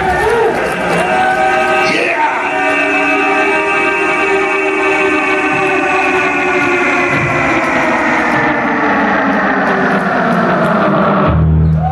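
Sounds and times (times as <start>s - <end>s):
distorted guitar and bass chord: 0.0s - 11.9s.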